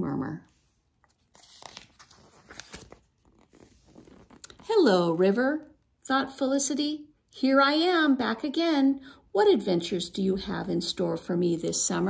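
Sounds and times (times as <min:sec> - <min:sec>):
book page turning: 0:00.5 - 0:04.7.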